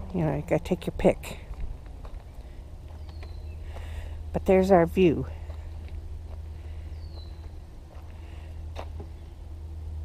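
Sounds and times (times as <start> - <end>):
low rumble: 0.0 - 4.4.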